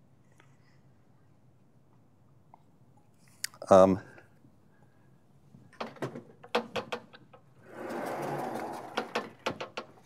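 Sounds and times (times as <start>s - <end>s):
panels knocking and clacking: 5.7s - 10.0s
blackboard panels sliding on runners: 7.6s - 9.6s.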